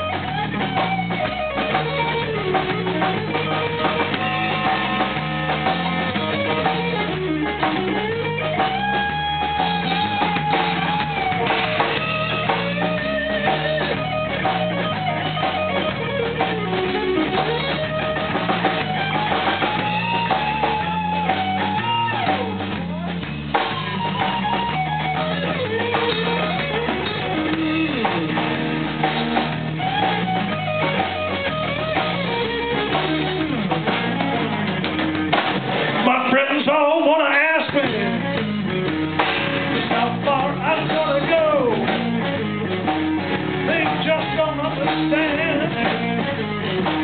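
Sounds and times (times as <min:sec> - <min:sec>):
bass guitar: 0:00.0 - 0:47.0
drum kit: 0:00.0 - 0:47.0
electric guitar lead with bent notes: 0:00.0 - 0:47.0.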